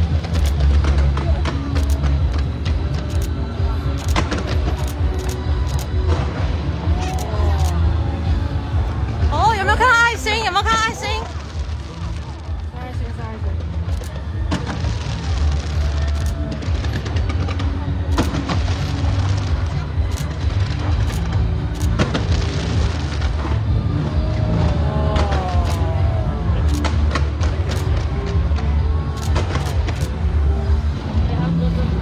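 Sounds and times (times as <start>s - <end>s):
fireworks bangs: 8.7s - 30.9s.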